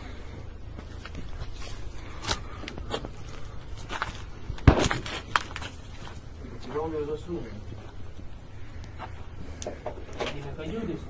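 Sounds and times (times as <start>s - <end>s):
low steady rumble: 0.0s - 11.0s
footsteps crunching over rubble: 0.4s - 10.6s.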